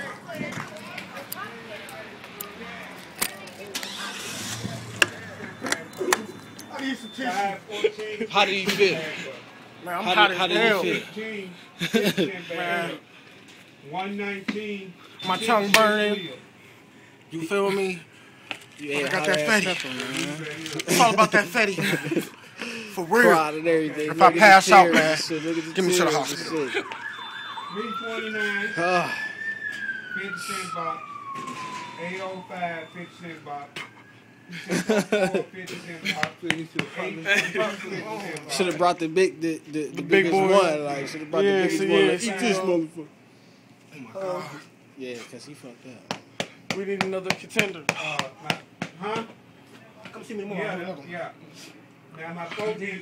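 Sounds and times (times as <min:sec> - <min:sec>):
vehicle engine humming: 0:00.0 - 0:09.9
siren wailing: 0:03.8 - 0:07.6, 0:24.2 - 0:35.6.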